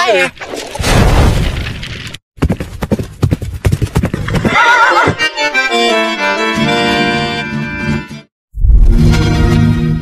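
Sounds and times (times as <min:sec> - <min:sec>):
horse hooves galloping: 0:02.4 - 0:05.3
horse whinny: 0:04.4 - 0:05.2.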